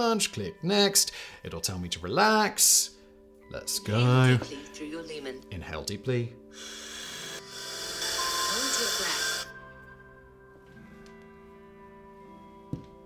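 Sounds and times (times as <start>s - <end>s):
soft background music: 0.0s - 13.0s
deep inhale through mouthpiece: 6.5s - 9.5s.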